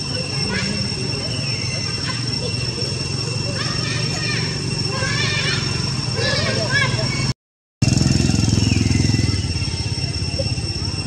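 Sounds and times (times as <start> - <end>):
high-pitched whine: 0.0 - 11.0
small engine pulsing: 0.0 - 11.0.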